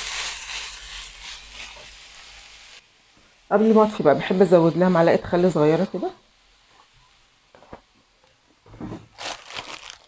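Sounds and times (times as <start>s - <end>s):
crinkling crackling in a frying pan: 0.0s - 10.0s.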